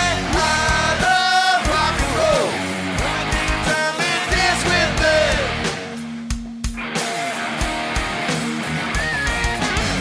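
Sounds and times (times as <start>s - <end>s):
electric guitar: 0.0s - 10.0s
rock band playing: 0.0s - 10.0s
person singing: 3.4s - 5.8s.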